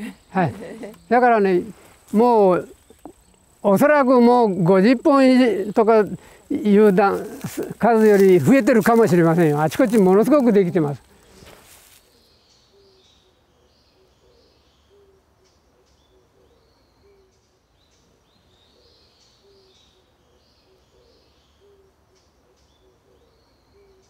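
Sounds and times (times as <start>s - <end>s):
faint birdsong chirps: 0.0s - 24.0s.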